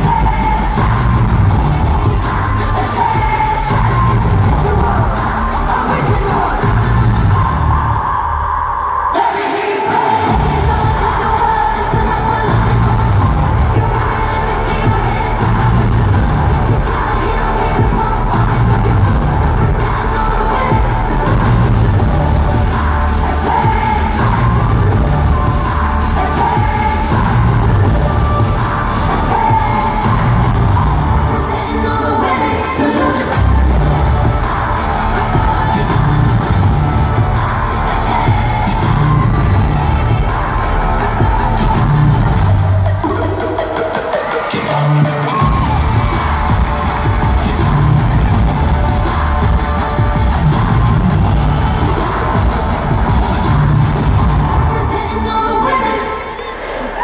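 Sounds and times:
heavy bass beat: 0.0 - 8.1, 10.2 - 31.8, 33.3 - 55.3
loud live pop music: 0.0 - 57.0.

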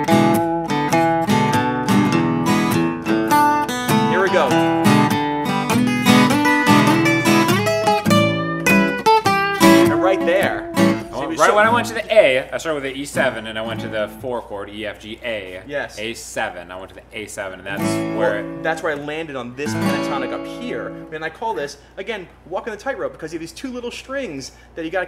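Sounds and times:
acoustic guitar double stops: 0.0 - 12.0
acoustic guitar strumming: 0.0 - 14.4, 17.7 - 21.2.

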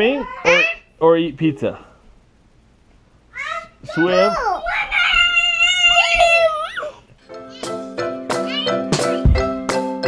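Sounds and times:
child shouting: 3.3 - 7.7, 8.4 - 8.9
background music with steady beat: 7.3 - 10.0.

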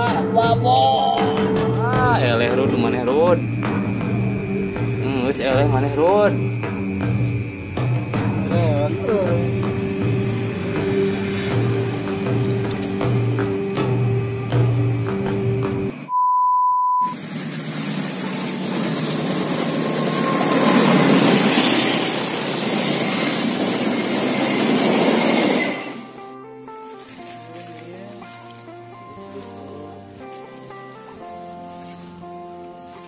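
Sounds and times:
background music: 0.0 - 16.1, 18.6 - 33.0
train passing: 1.4 - 16.1, 17.1 - 27.0
steady beep: 16.0 - 17.2.

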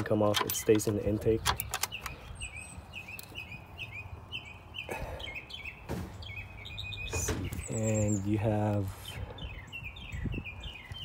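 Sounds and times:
small bird chirping: 0.6 - 11.0.

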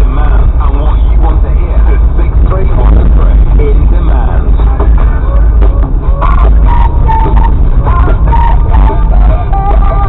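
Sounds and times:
voice from car radio: 0.0 - 7.1
engine and road rumble: 0.0 - 10.0.

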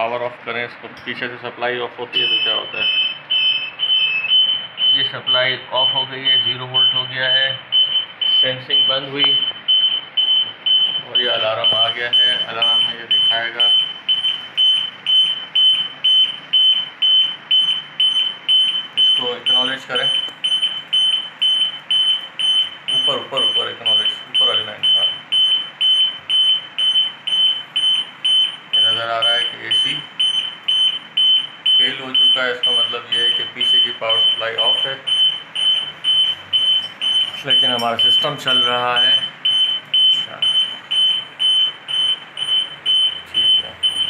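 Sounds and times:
alarm buzzer beeping: 2.2 - 44.0.

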